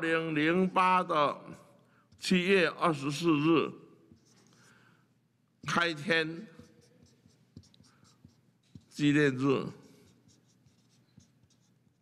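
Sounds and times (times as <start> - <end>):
marker scratching on paper: 4.0 - 4.8, 5.6 - 12.0
marker tapping on paper: 6.6 - 9.0.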